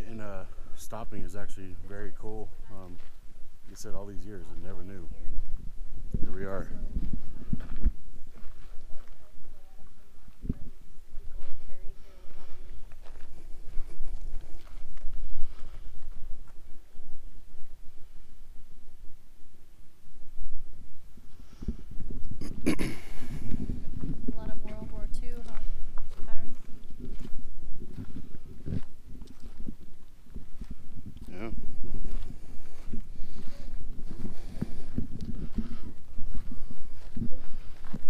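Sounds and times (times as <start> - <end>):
wind rumble on microphone: 0.0 - 38.0
faint indistinct voices: 35.4 - 38.0.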